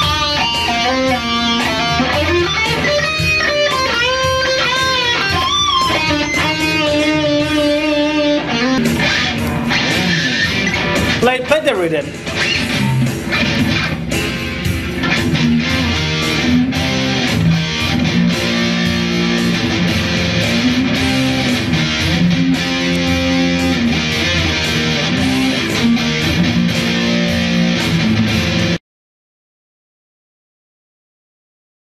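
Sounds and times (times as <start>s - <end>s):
electric guitar rock rhythm: 0.0s - 28.8s.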